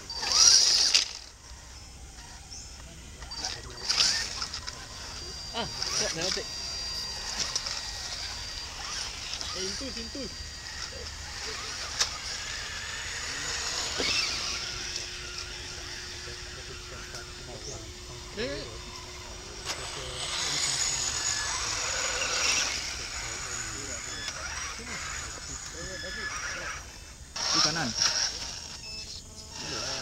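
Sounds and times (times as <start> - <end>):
toy truck motors whining: 0.0 - 30.0.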